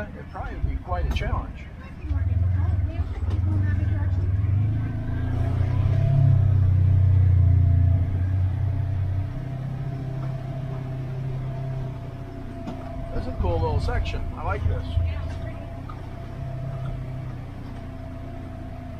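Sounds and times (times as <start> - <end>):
vehicle engine droning: 0.0 - 18.9.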